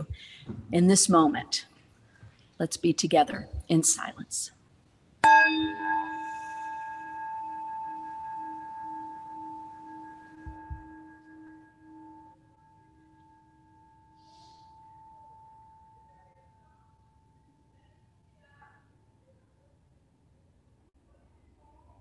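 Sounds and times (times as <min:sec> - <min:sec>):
singing bowl ringing: 0:05.2 - 0:17.5.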